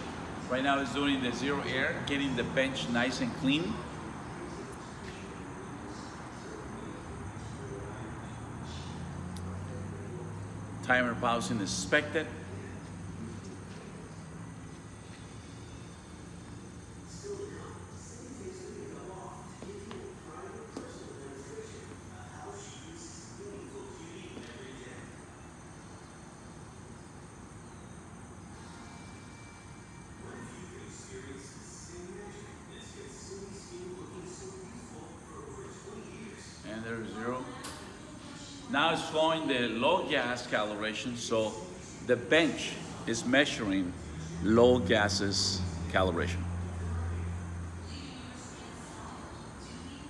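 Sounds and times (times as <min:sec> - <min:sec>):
low steady background noise: 0:00.0 - 0:50.0
faint indistinct voices: 0:02.8 - 0:26.3, 0:28.5 - 0:50.0.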